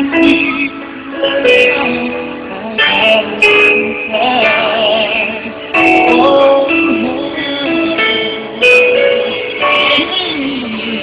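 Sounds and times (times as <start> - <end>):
live pop ballad band: 0.0 - 11.0.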